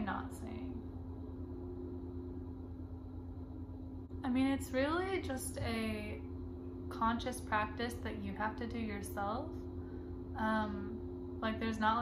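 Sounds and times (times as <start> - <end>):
faint steady tones: 0.0 - 12.0
low background hum: 0.0 - 12.0.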